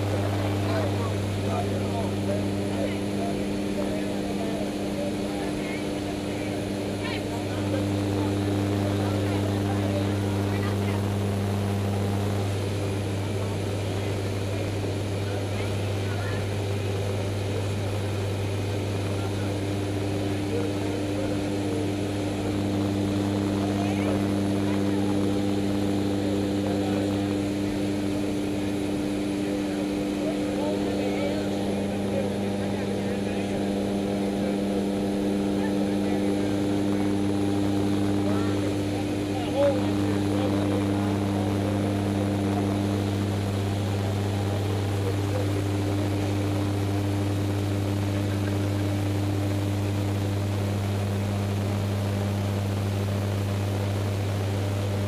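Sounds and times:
propeller engines droning in cabin: 0.0 - 55.0.

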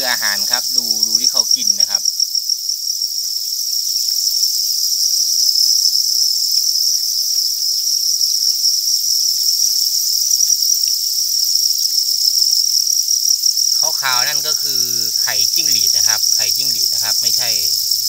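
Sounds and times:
crickets chirping: 0.0 - 18.0
faint ticks and rustles: 0.6 - 4.3, 5.6 - 13.8.

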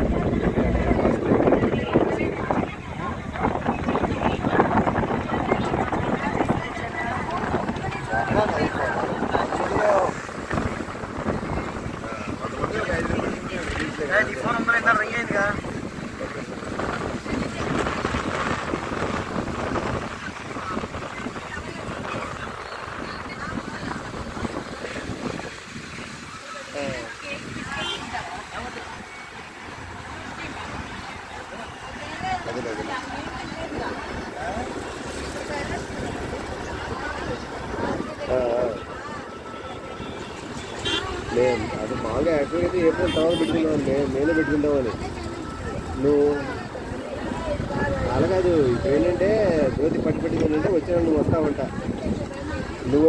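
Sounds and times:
distant surf: 0.0 - 53.0
faint voices: 0.0 - 53.0
wind buffeting microphone: 0.0 - 53.0.

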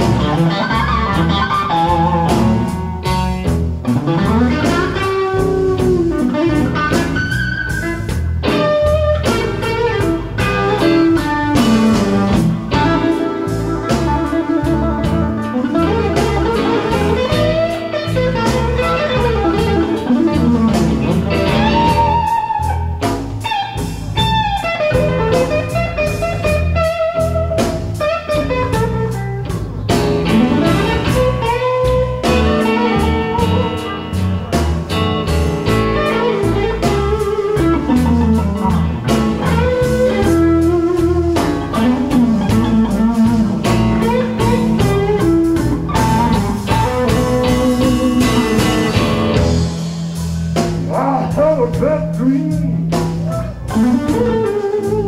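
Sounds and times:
drum kit steady beat: 0.0 - 55.0
electric guitar solo: 0.0 - 55.0.

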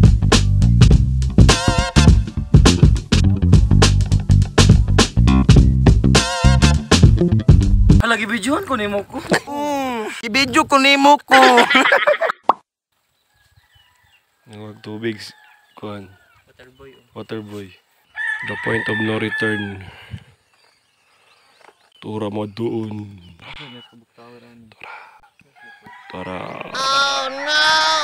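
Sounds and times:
person's voice: 8.0 - 11.8
faint rooster crowing: 13.2 - 16.6, 18.1 - 20.0, 25.5 - 28.0.

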